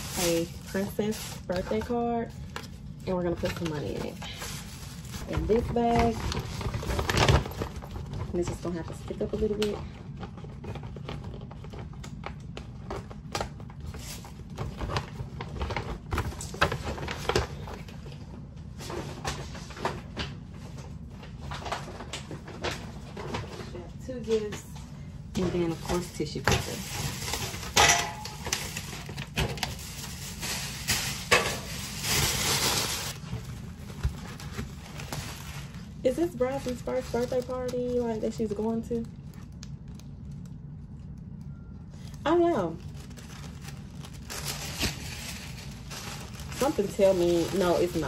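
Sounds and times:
paper bag and tissue paper crinkling: 0.0 - 24.7, 25.4 - 48.0.

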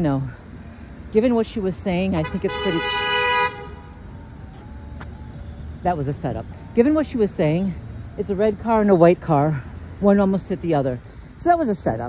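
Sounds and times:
street traffic noise: 0.0 - 12.0
car horn honking: 2.2 - 4.0.

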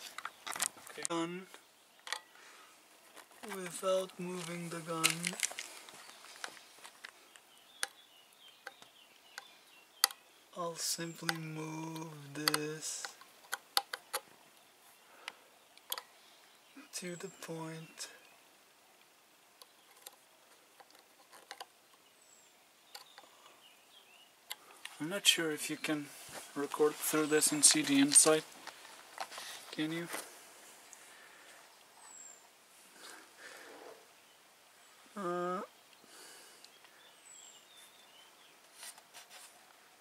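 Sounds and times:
faint outdoor ambience: 0.0 - 40.0
soft rustles: 2.9 - 7.3, 25.9 - 34.1, 37.7 - 39.9.

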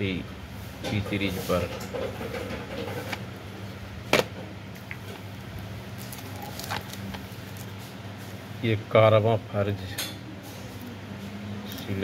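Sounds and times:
steady low hum: 0.0 - 12.0
plastic wrap crinkling: 4.9 - 7.9.

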